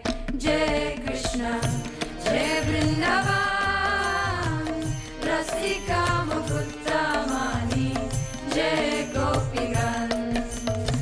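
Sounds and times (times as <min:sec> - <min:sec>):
sharp percussion strokes: 0:00.0 - 0:11.0
steady drum beat: 0:00.0 - 0:11.0
sung chant: 0:00.4 - 0:10.6.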